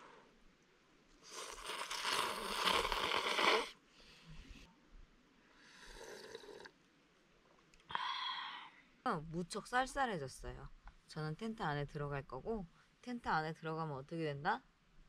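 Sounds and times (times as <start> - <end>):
person slurping noodles: 1.2 - 3.8, 5.7 - 6.7.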